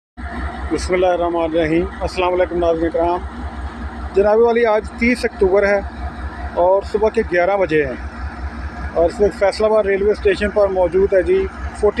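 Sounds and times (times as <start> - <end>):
steady low rumble: 0.2 - 12.0
person speaking: 6.5 - 8.1, 8.9 - 12.0.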